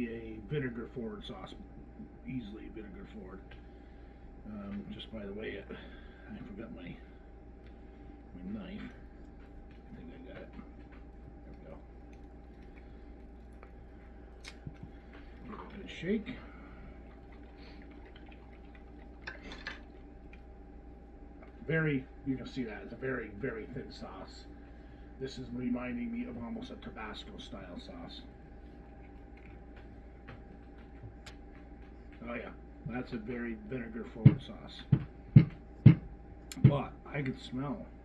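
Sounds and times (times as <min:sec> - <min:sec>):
low steady hum: 0:00.0 - 0:38.0.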